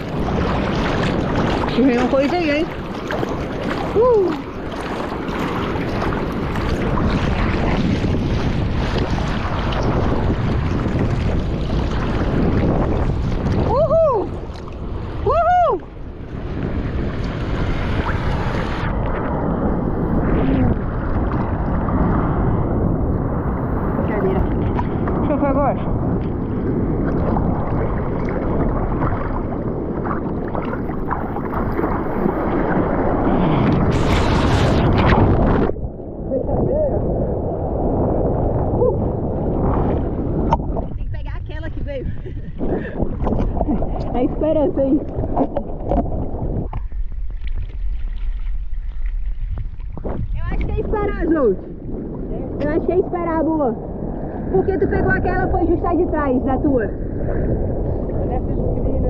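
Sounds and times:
water gurgles: 0.0s - 59.0s
water sloshing and splashing: 0.0s - 59.0s
wind on microphone: 0.0s - 59.0s.

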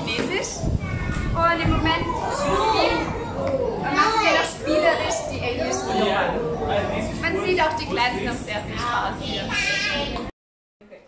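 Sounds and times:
small children chattering: 0.3s - 10.3s.

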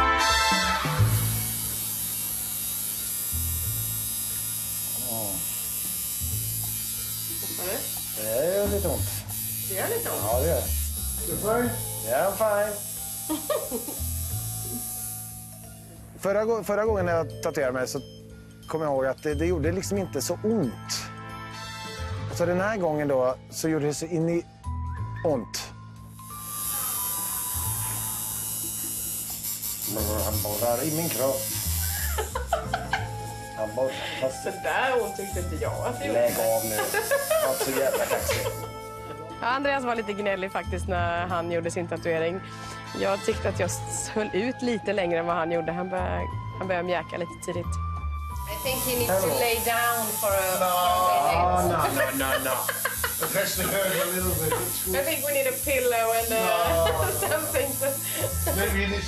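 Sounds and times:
tattoo machine buzzing: 0.0s - 16.1s, 25.8s - 41.8s, 47.7s - 59.0s.

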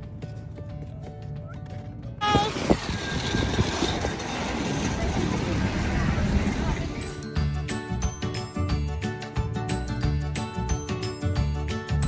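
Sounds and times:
faint music: 0.0s - 2.3s
indistinct clatter: 2.5s - 7.2s.

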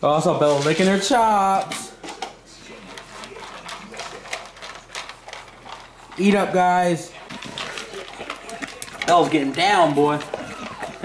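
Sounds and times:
dog chewing food: 0.7s - 11.0s.

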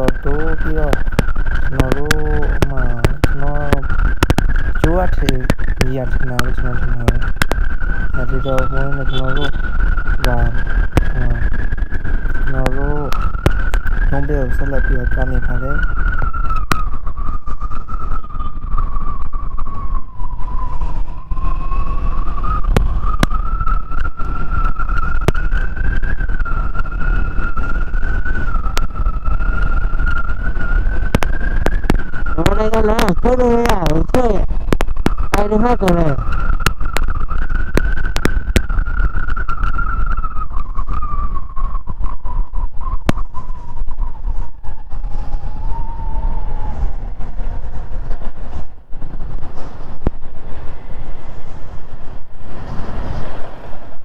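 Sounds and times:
motorcycle riding: 0.0s - 54.0s
steady high whine: 0.0s - 54.0s
wind rumble on microphone: 0.0s - 54.0s.

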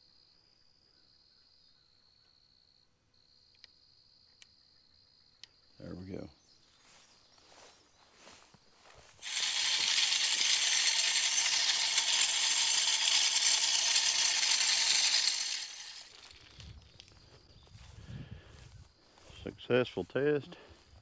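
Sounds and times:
feed rattling spray: 9.2s - 16.4s
feeder motor spinning: 9.2s - 16.6s.

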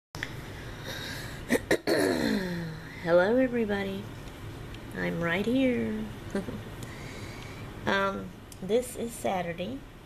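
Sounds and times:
low room noise: 0.2s - 10.0s
woman coughing: 1.5s - 2.6s
woman's voice: 2.4s - 4.1s, 4.9s - 6.6s, 7.8s - 9.9s.

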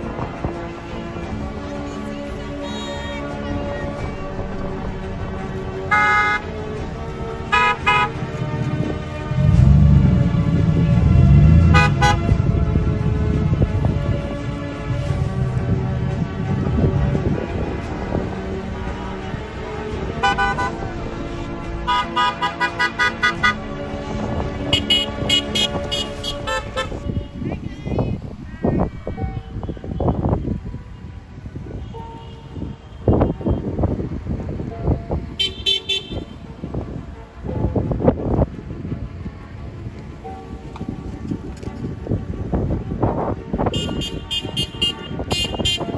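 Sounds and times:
car engines and road noise: 0.0s - 45.9s
vehicles driving slowly past: 0.0s - 45.9s
car horns honking: 2.4s - 3.7s, 5.2s - 12.5s, 20.1s - 23.8s, 24.6s - 33.7s, 35.4s - 36.4s, 43.6s - 45.9s
vehicle horn beeps: 2.6s - 3.4s, 5.9s - 6.4s, 7.5s - 8.2s, 11.7s - 12.2s, 20.2s - 20.8s, 24.7s - 27.4s, 31.8s - 33.6s, 35.4s - 36.4s, 43.7s - 45.9s.

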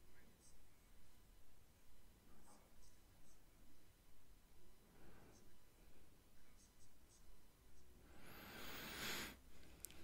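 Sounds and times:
faint muffled man's speech: 0.0s - 1.2s, 6.3s - 7.4s.

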